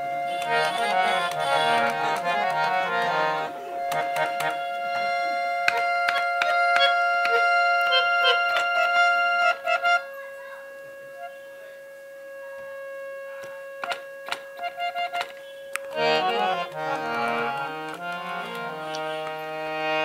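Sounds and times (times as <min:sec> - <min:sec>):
harmonium playing: 0:00.0 - 0:20.0
harmonium key clicks: 0:00.4 - 0:05.0, 0:05.6 - 0:09.0, 0:13.4 - 0:20.0.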